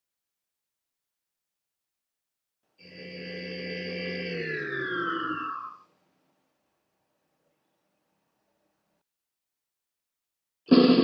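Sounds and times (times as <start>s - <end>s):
electronic falling tone: 3.2s - 5.9s.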